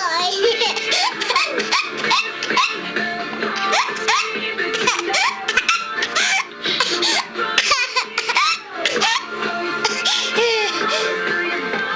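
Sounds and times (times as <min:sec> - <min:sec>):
toddler laughing: 0:00.2 - 0:02.8, 0:03.7 - 0:10.8.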